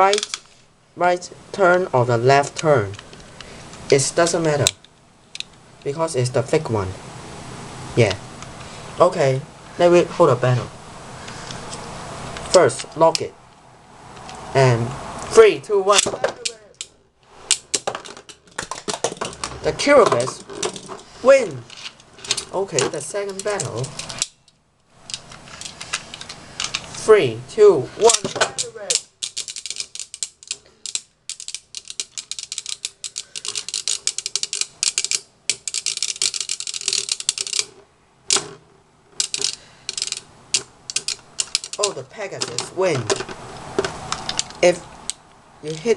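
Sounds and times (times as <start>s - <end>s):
spinning tops clashing: 15.9s - 21.0s
spinning tops clattering: 15.9s - 24.2s, 28.0s - 44.4s.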